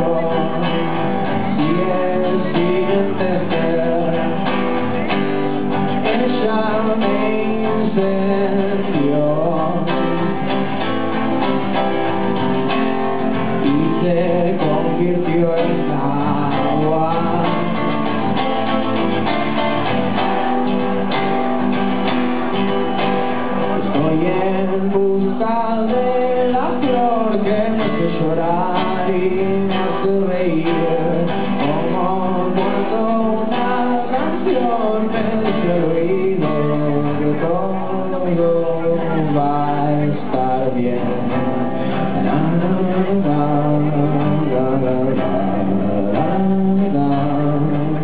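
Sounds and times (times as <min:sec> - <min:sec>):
man singing: 0:00.0 - 0:21.6, 0:22.4 - 0:48.0
acoustic guitar: 0:00.0 - 0:48.0.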